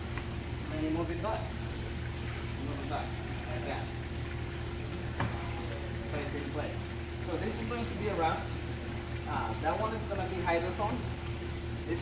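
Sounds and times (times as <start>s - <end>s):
steady low hum: 0.0s - 12.0s
water splashing and trickling: 0.0s - 12.0s.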